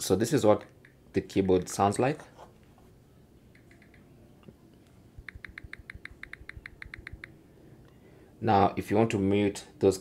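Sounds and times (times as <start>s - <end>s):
phone keyboard key clicks: 5.2s - 7.4s.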